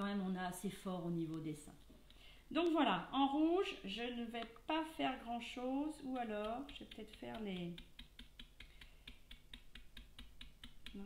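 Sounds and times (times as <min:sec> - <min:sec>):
stencil brush tapping on plastic: 0:06.1 - 0:11.0.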